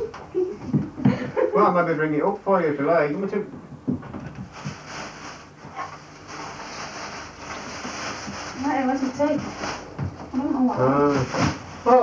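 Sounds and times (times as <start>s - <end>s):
faint low hum: 0.0s - 12.0s
steady hiss: 4.3s - 12.0s.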